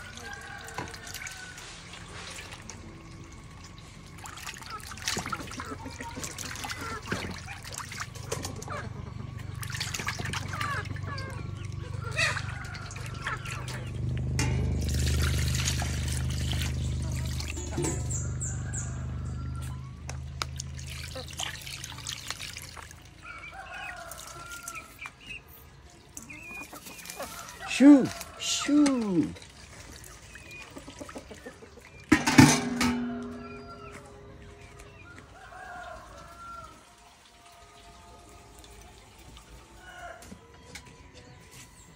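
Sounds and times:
water trickling and splashing: 0.0 - 40.5
low droning hum: 7.4 - 22.0, 32.2 - 35.1.

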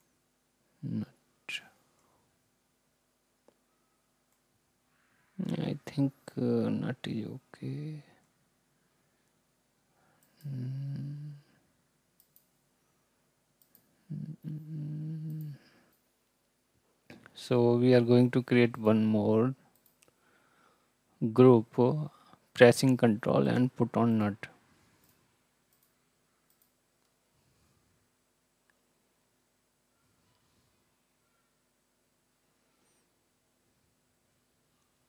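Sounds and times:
computer mouse clicks: 12.2 - 12.6, 13.6 - 13.9, 19.7 - 20.2, 25.0 - 27.2.

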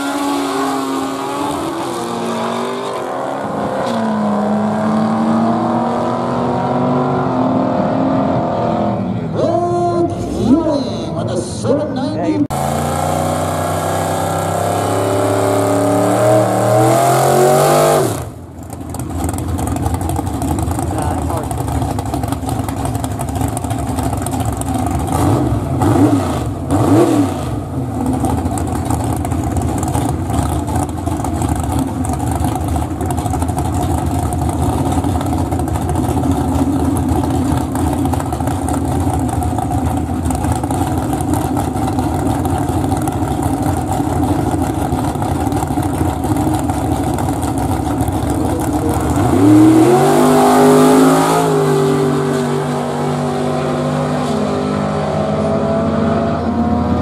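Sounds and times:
cars accelerating at full throttle: 0.0 - 9.4, 12.4 - 57.0
engine revs: 0.0 - 9.4, 12.5 - 18.4, 19.2 - 57.0
car engines idling loudly: 18.2 - 26.8, 27.5 - 51.3.

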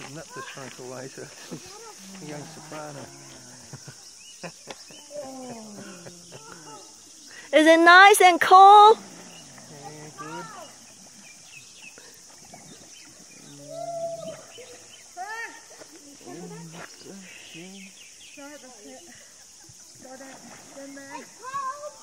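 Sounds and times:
people calling out and exclaiming: 0.2 - 4.1, 4.9 - 9.0, 9.7 - 10.9, 13.5 - 22.0.

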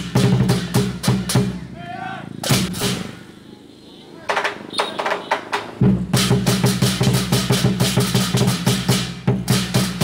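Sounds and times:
drum beating: 0.0 - 1.8, 2.4 - 3.2, 4.3 - 10.0.

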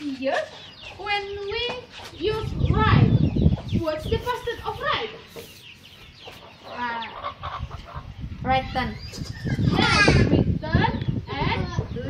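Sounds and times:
chicken clucking: 3.2 - 8.2.

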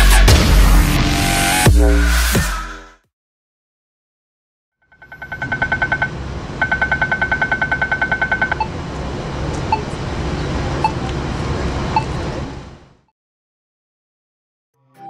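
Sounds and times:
street traffic: 4.9 - 13.1.

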